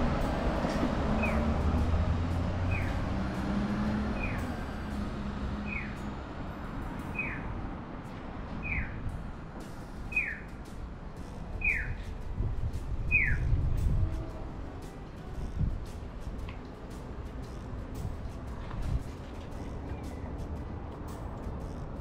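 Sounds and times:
low traffic rumble: 0:00.0 - 0:22.0
crossing signal chirping: 0:02.6 - 0:03.0, 0:04.1 - 0:04.6, 0:05.6 - 0:06.2, 0:07.1 - 0:07.5, 0:08.6 - 0:09.0, 0:09.8 - 0:10.6, 0:11.6 - 0:12.0.

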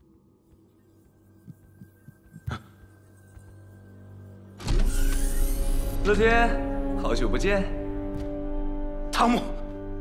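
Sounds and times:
motorized mechanism whirring: 0:04.6 - 0:06.2.

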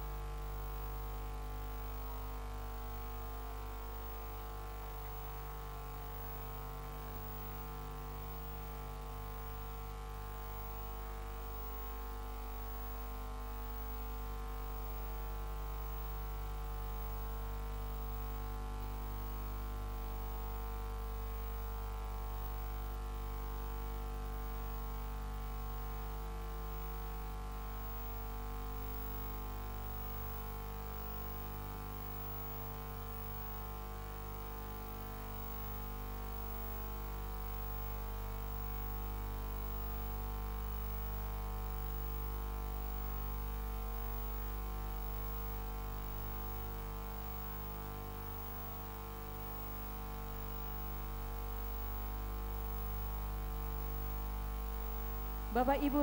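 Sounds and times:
electrical mains hum: 0:00.0 - 0:56.0.

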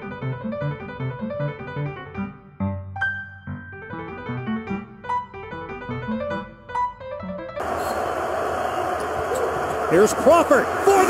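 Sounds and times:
piano music: 0:00.0 - 0:08.1
arena crowd noise: 0:07.6 - 0:11.0.

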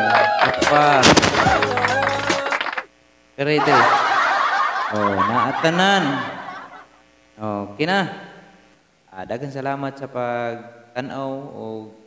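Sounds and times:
person laughing: 0:01.2 - 0:02.2, 0:03.6 - 0:06.8.

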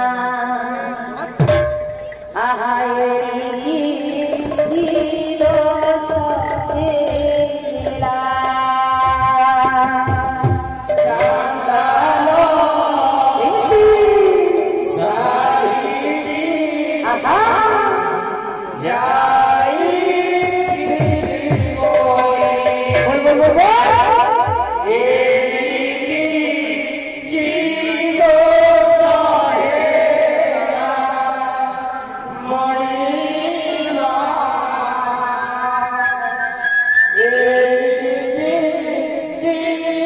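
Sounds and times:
voices singing a devotional chant: 0:00.0 - 0:40.0.

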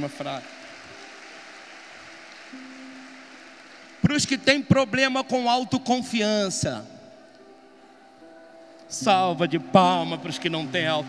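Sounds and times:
audience applauding: 0:00.0 - 0:04.6, 0:09.1 - 0:11.0
soft background music: 0:00.0 - 0:11.0.

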